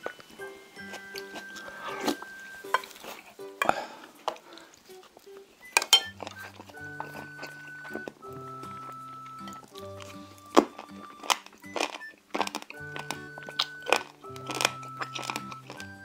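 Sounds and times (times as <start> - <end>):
background music of sustained notes: 0.0 - 16.0
crunching bites and chewing: 0.8 - 16.0.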